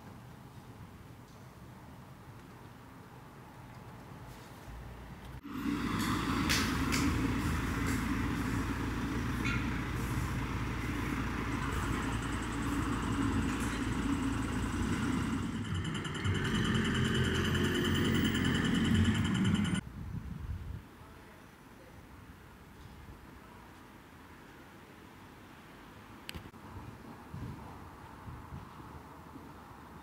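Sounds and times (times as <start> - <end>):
cars passing at intersection: 5.4 - 19.8
high-pitched steady tone: 5.4 - 19.8.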